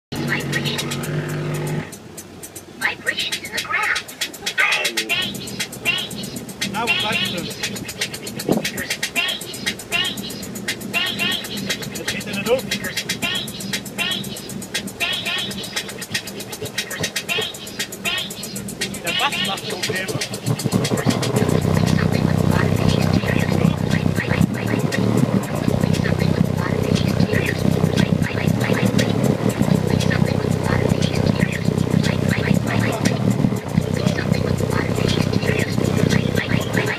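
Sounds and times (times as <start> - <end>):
bass-heavy music through subwoofers: 0.1 - 2.0, 3.5 - 36.9.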